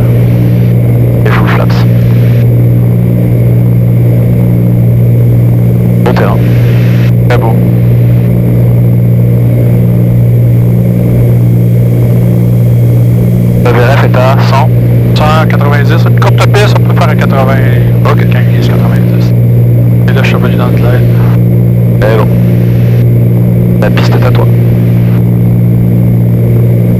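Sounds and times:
aircraft engines and propellers droning: 0.0s - 26.9s.

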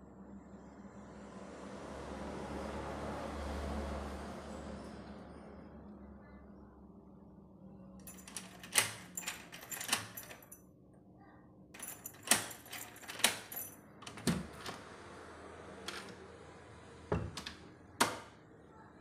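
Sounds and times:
keys jangling: 8.0s - 10.6s, 11.8s - 14.8s
door lock mechanism clicking: 8.1s - 10.6s, 11.8s - 14.8s.

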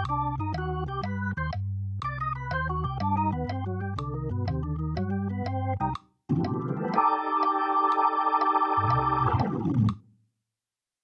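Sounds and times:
bass line: 0.0s - 6.7s, 8.8s - 10.0s
organ playing fast swung lick: 0.0s - 10.0s.

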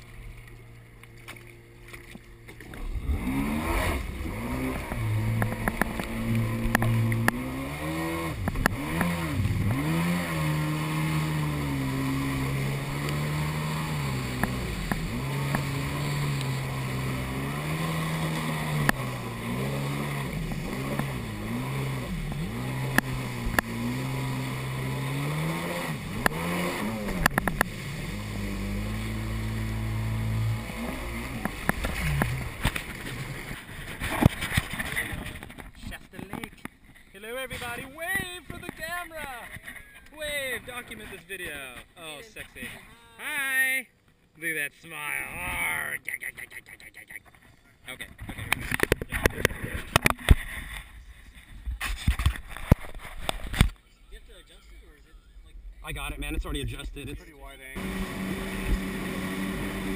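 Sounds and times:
jet ski engine revving: 0.0s - 36.3s, 57.5s - 59.9s.

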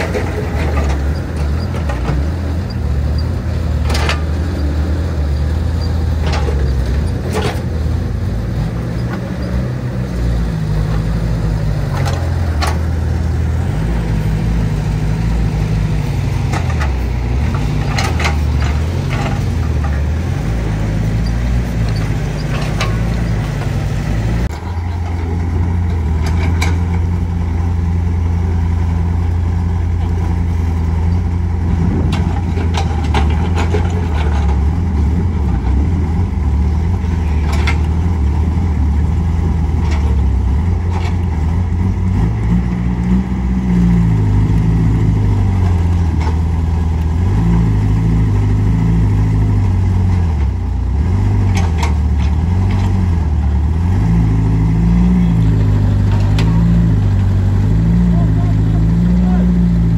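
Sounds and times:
diesel engine under load: 0.0s - 59.9s.

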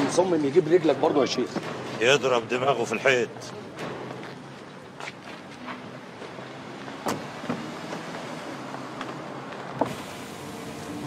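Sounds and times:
car and street hum: 0.0s - 11.0s
car doors shutting: 7.0s - 8.1s, 9.0s - 11.0s.

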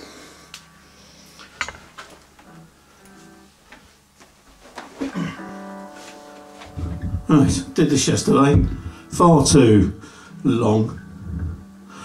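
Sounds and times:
guitar handling clicks and knocks: 1.5s - 2.6s
electric guitar plucked notes: 2.3s - 3.6s, 5.1s - 12.0s.

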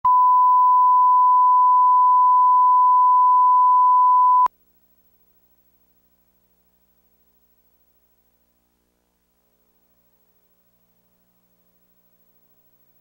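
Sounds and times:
steady test tone: 0.0s - 4.5s.

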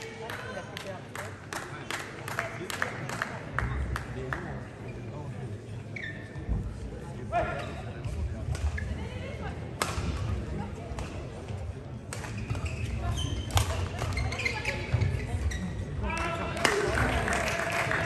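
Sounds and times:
applause: 0.2s - 4.5s, 16.5s - 18.0s.

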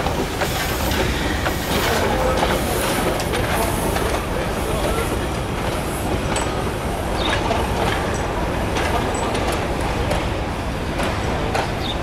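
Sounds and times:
railway wheels rumbling on track: 0.0s - 12.0s
wheels clacking over rail joints: 0.0s - 12.0s.

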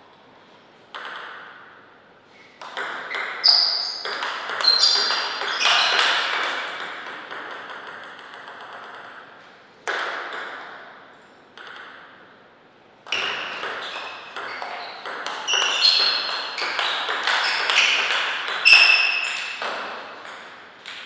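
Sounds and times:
table tennis ball clicking: 2.6s - 9.2s, 11.6s - 12.0s.

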